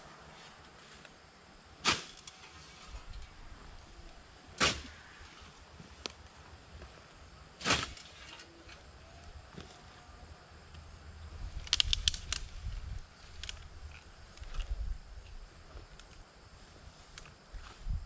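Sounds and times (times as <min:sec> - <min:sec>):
scythe swishing through weeds: 0:01.8 - 0:03.1, 0:04.6 - 0:05.2, 0:07.6 - 0:08.3
sharp clicks and rustling: 0:11.6 - 0:12.5, 0:13.3 - 0:14.7.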